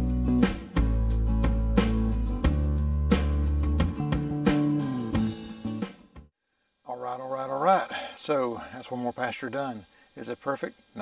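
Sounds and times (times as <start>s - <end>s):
crickets chirring: 6.4s - 11.0s
man speaking: 6.9s - 11.0s.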